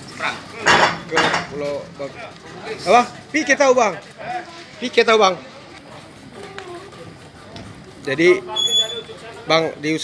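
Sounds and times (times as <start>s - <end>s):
clattering clinking noises: 0.6s - 2.5s.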